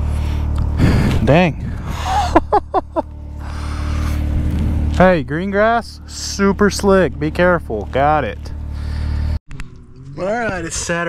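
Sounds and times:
engine idling: 0.0 - 11.0
man laughing: 1.9 - 3.1.

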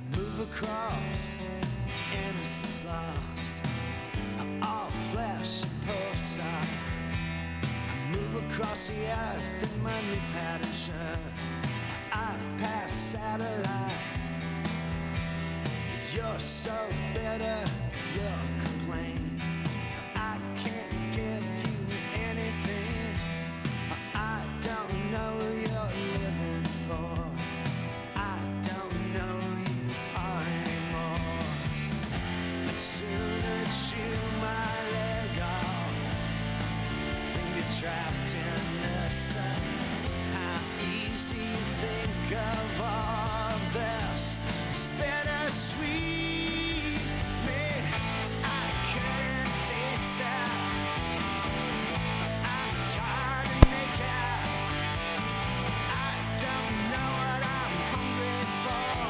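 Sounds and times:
rock music with guitars: 0.0 - 59.0.

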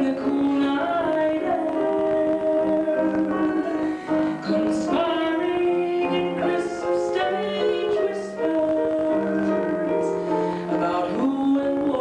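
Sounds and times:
musical accompaniment: 0.0 - 12.0
woman singing: 0.0 - 12.0.

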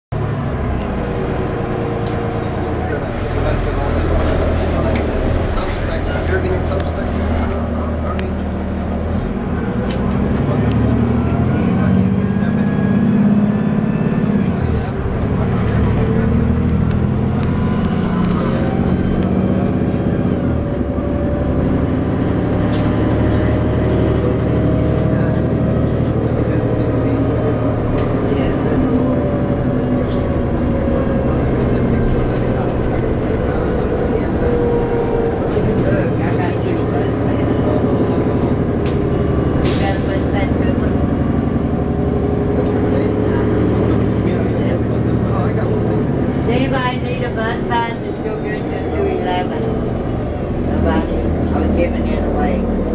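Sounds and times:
bus engine from inside: 0.1 - 52.9.

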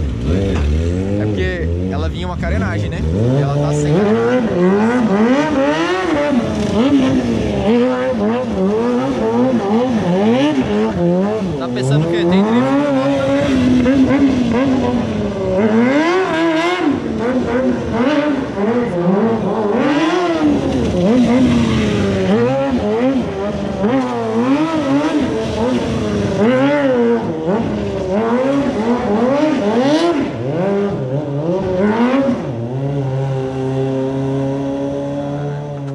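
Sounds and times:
motorcycle engine revving: 0.0 - 35.9.

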